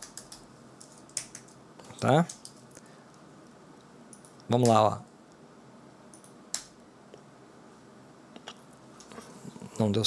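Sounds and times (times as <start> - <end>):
computer keyboard typing: 0.0 - 2.7, 4.1 - 4.8, 6.1 - 6.7.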